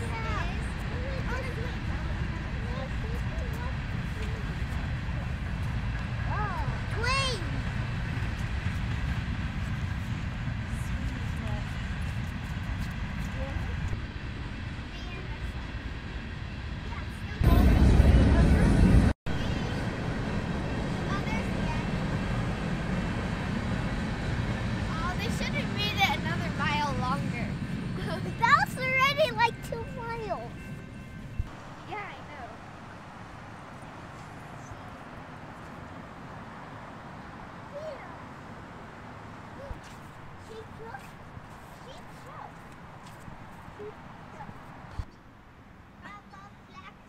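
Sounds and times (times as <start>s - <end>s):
children laughing and chattering: 0.0s - 8.6s, 20.9s - 30.6s, 39.4s - 45.0s
low outdoor rumble: 0.0s - 45.1s
loud rush of noise: 14.0s - 28.1s
child's high call: 37.7s - 38.2s, 39.5s - 41.2s, 43.8s - 44.6s.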